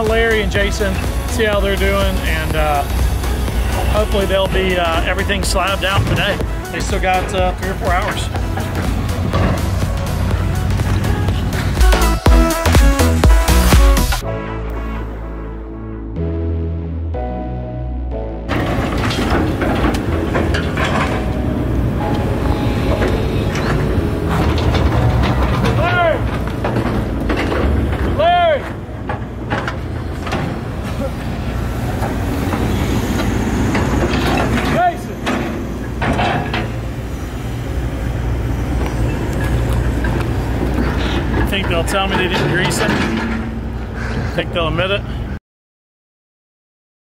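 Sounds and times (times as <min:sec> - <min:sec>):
metal clanks and knocks: 0:00.0 - 0:12.2, 0:18.5 - 0:37.0, 0:38.7 - 0:44.3
diesel engines under load: 0:00.0 - 0:14.2, 0:17.2 - 0:45.4
music track: 0:00.0 - 0:30.4
squeals rising and falling: 0:18.5 - 0:44.0.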